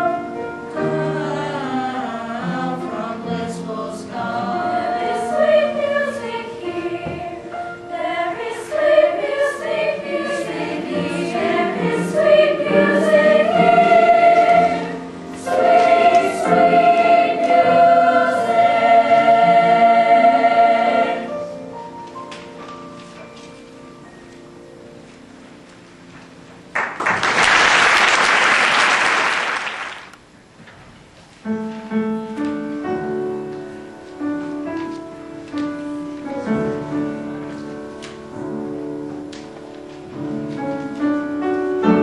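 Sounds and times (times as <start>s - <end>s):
choir singing in parts: 0.0s - 21.9s.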